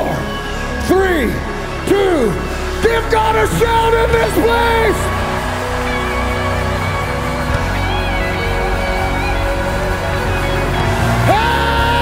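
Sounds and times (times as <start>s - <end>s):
congregation shouting and cheering: 0.0s - 12.0s
heavy bass: 0.0s - 12.0s
electric guitars: 3.5s - 12.0s
rock band playing: 3.9s - 12.0s.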